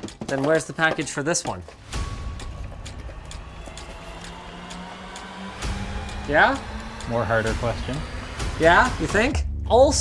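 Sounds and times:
boxes and parts clicking and knocking: 0.0 - 4.8.

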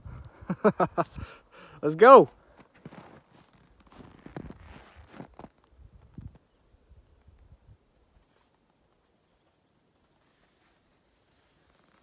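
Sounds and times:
crunching footsteps on snow: 2.0 - 6.4, 8.1 - 12.0.

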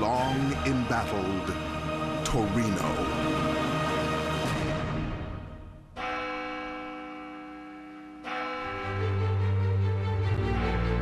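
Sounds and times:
deep bell stroke ringing: 6.0 - 11.0.

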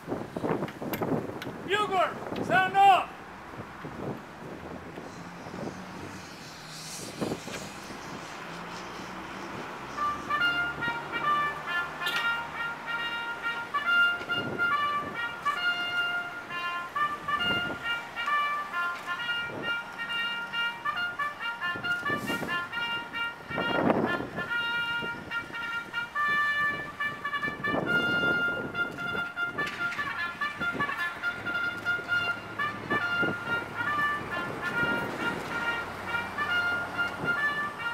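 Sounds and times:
rustling noise: 3.8 - 11.5
brass music with held notes: 5.1 - 37.9.

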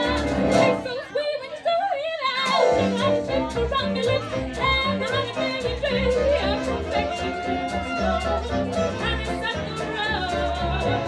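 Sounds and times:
double bass and drums: 0.0 - 0.9, 2.5 - 11.0
woman singing: 0.0 - 11.0
clarinet and saxophone: 5.2 - 10.0.

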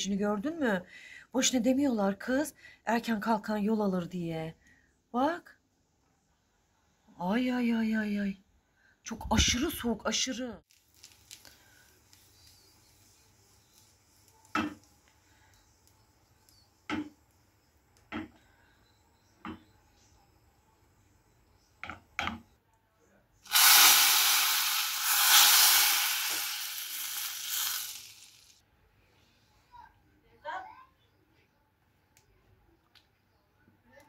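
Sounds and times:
hot butter sizzling: 10.7 - 16.7, 23.5 - 28.6.

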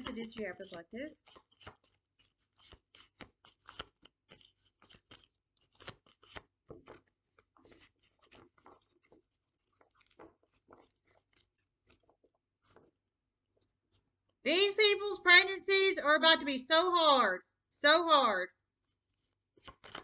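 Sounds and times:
cards being shuffled: 0.0 - 12.9, 19.1 - 20.0.

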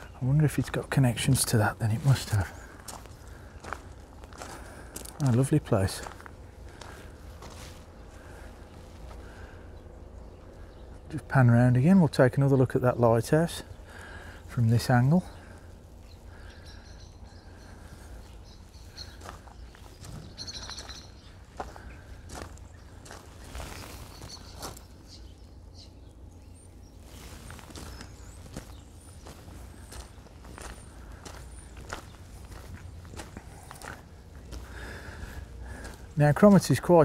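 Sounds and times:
soft footsteps: 2.0 - 5.4, 6.0 - 9.2, 17.9 - 25.1, 27.0 - 36.2.

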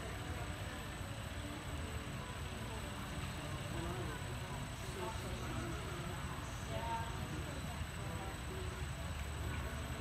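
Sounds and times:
faint high whine: 0.0 - 10.0
low rumble and hiss: 0.0 - 10.0.

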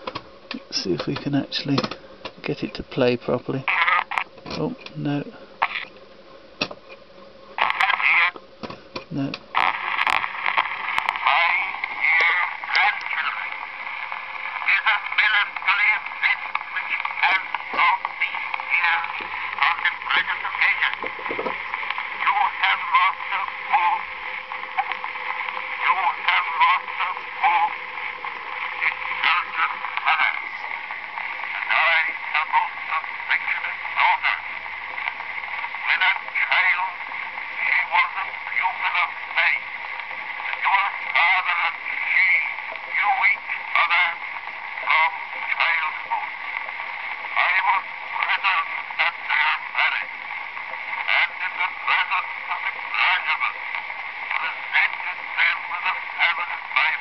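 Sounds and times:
faint hum: 0.0 - 57.0
man speaking on phonograph: 0.5 - 5.9, 7.6 - 8.4, 9.0 - 57.0.

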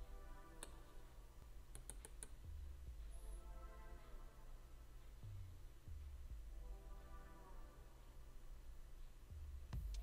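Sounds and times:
quiet background music: 0.0 - 10.0
computer mouse clicks: 1.7 - 2.4.

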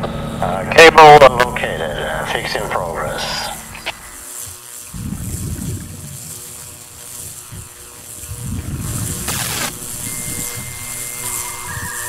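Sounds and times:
thin steady electronic tone: 9.3 - 12.0.

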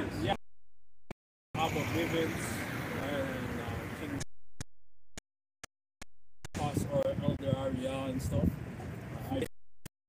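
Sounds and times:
outdoor street noise: 0.0 - 0.4, 1.6 - 4.7, 6.5 - 9.5.

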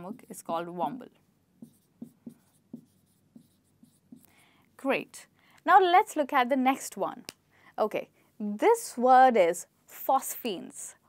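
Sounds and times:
marker pen writing on whiteboard: 0.0 - 4.4.

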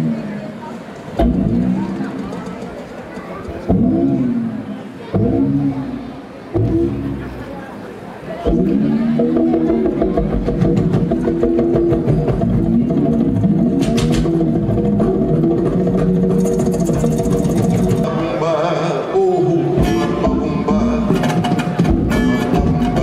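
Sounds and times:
plucked strings: 1.1 - 7.7, 8.3 - 18.4, 19.4 - 23.0
light percussion: 9.6 - 18.1.

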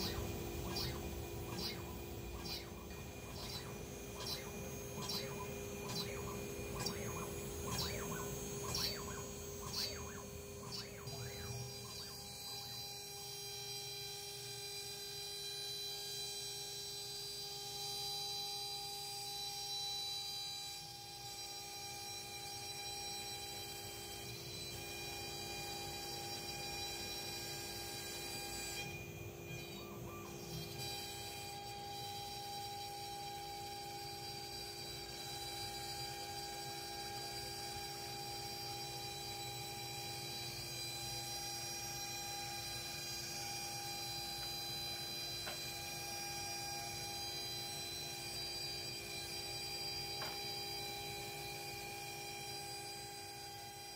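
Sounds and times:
router spindle whining: 0.0 - 53.9.

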